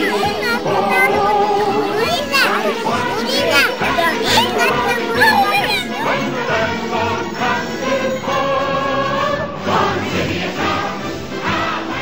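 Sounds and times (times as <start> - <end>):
children chattering and calling out: 0.0 - 9.6
music playing: 0.0 - 12.0.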